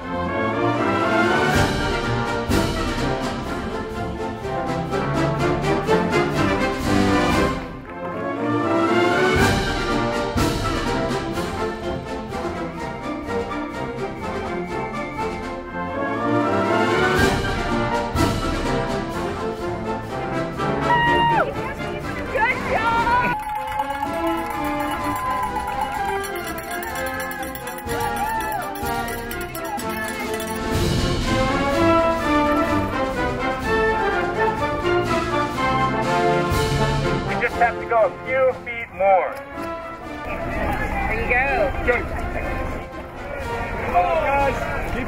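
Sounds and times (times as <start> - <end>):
orchestral music with brass: 0.0 - 45.0.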